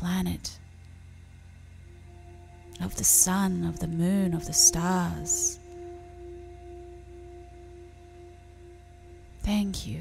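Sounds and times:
low hum: 0:00.0 - 0:10.0
meditation music held tones: 0:00.0 - 0:10.0.

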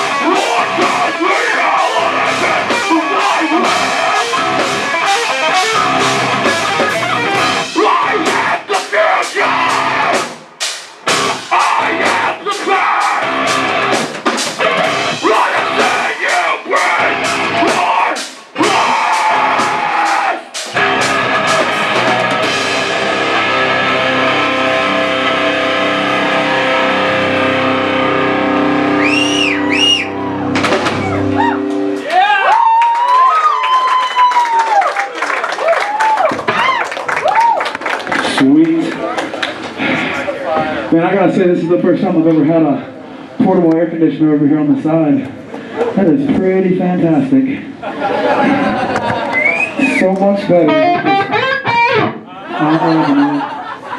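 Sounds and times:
crowd whistling and shouting: 0:00.0 - 0:10.2, 0:24.3 - 0:37.8, 0:48.3 - 0:50.2
live heavy metal band: 0:00.0 - 0:32.8, 0:50.7 - 0:53.8.

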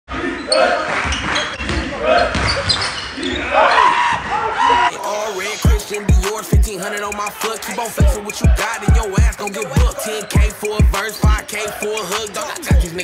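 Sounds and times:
players' voices echoing: 0:00.1 - 0:13.0
hip-hop track with heavy bass: 0:04.9 - 0:13.0
person rapping: 0:04.9 - 0:13.0.

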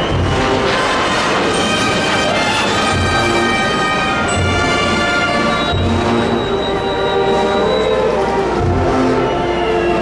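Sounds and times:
brass band sustained notes: 0:00.0 - 0:10.0.

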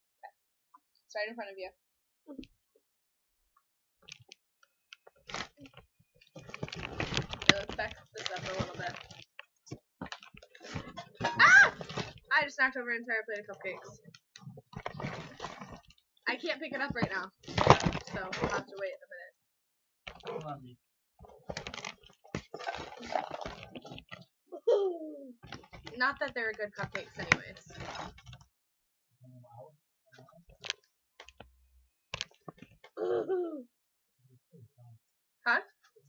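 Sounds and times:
plastic bottle crinkling: 0:05.1 - 0:12.3, 0:14.4 - 0:18.9, 0:21.2 - 0:24.2, 0:25.4 - 0:28.4
child gulping: 0:10.6 - 0:12.2, 0:22.4 - 0:26.0, 0:32.9 - 0:33.6.

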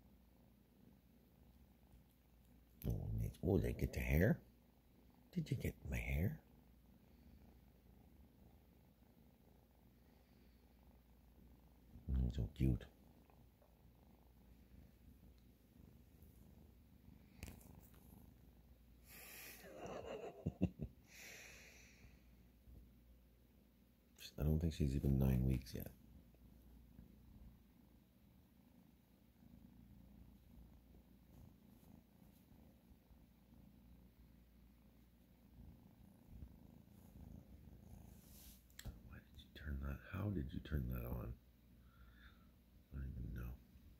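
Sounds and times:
kitten purring: 0:00.0 - 0:43.9.

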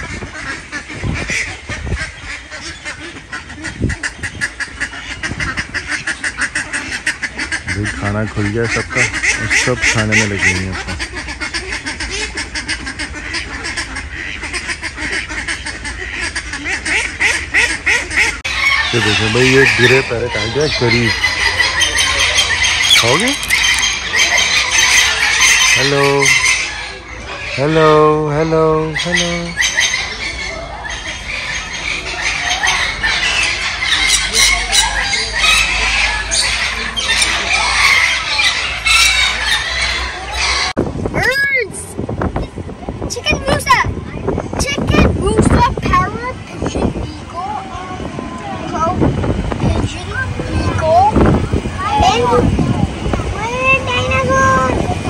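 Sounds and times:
ducks quacking: 0:00.0 - 0:47.7, 0:48.4 - 0:55.0
birds squawking and chirping: 0:00.0 - 0:55.0.

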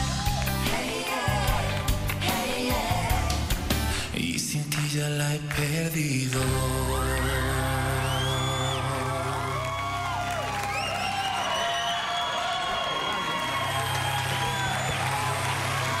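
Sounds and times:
audience cheering and whooping: 0:00.0 - 0:00.8, 0:07.1 - 0:16.0.

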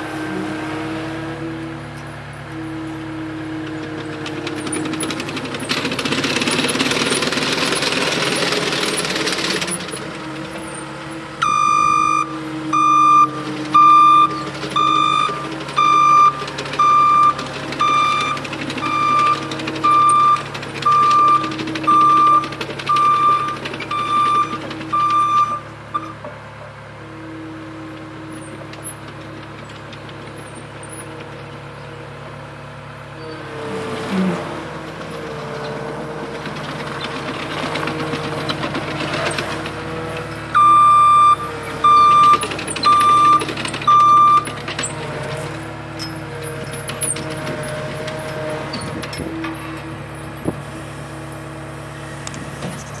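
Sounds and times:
diesel engine running: 0:00.0 - 0:53.0.

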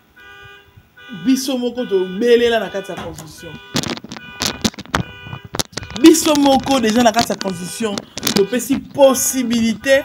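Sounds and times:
sharp irregular clicks and knocks: 0:03.0 - 0:09.0.

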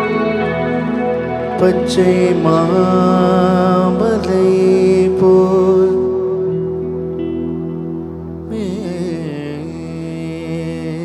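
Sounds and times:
sustained drone: 0:00.0 - 0:11.0
man singing wordless melody: 0:01.4 - 0:06.8, 0:08.4 - 0:11.0.

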